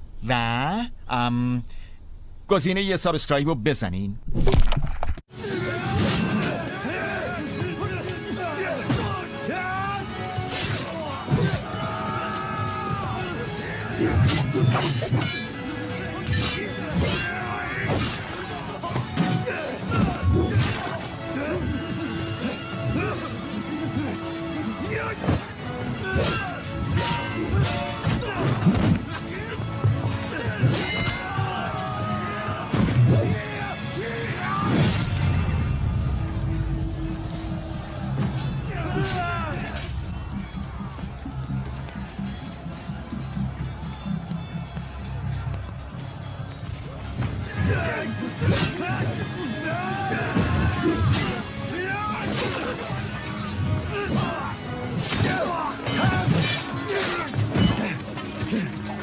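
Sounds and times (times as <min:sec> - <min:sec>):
dramatic film music: 0:05.3 - 0:59.0
fighters shouting: 0:05.4 - 0:42.2, 0:47.2 - 0:59.0.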